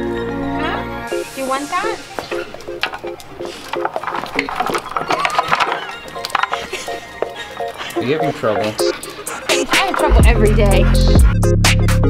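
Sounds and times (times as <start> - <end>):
chew sticks clattering in wooden holder: 2.2 - 8.0
music with staccato beat: 8.6 - 12.0.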